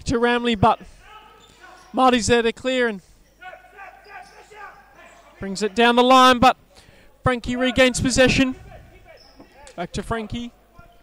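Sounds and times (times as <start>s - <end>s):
faint players calling out: 0.6s - 2.1s, 3.2s - 6.3s.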